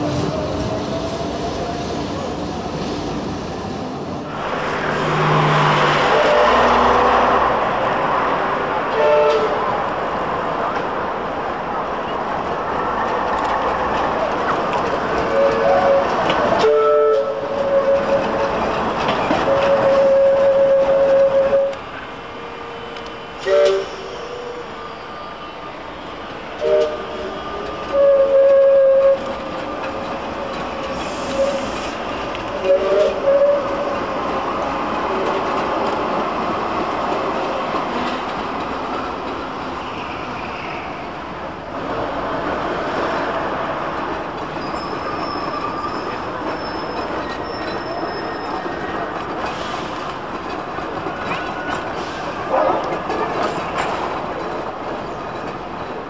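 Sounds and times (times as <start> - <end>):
traffic: 0.0 - 56.0
tram running on track: 0.0 - 56.0
tram horn toots: 4.3 - 7.7, 8.3 - 10.0, 15.1 - 25.8, 26.5 - 34.2.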